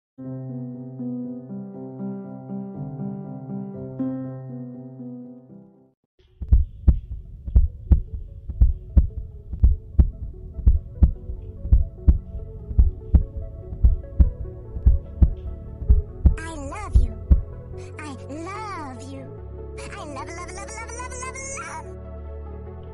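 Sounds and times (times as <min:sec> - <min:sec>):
heartbeat thumps: 0:06.4 - 0:17.6.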